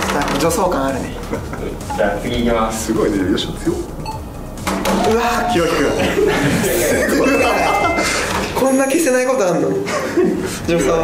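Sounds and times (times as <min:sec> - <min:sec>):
voices: 0:04.7 - 0:09.0.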